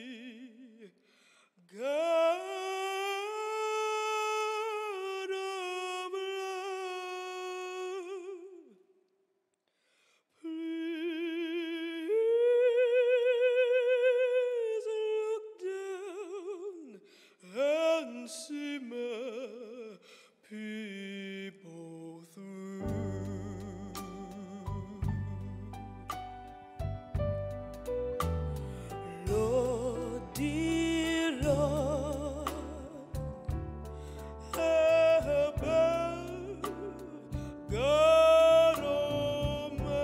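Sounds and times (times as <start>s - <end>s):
woman singing unaccompanied: 29.1s - 33.2s, 34.5s - 40.0s.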